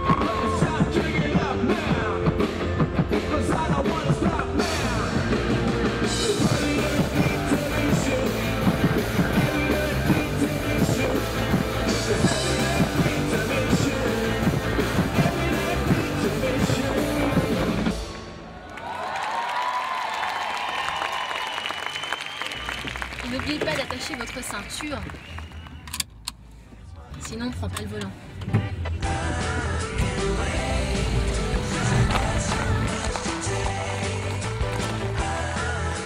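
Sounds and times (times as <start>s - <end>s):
crowd applauding and cheering: 0.0s - 1.6s, 4.6s - 26.0s
drum kit beat: 0.0s - 18.2s
live rock band playing: 0.0s - 18.4s
person singing into microphone: 6.1s - 17.9s.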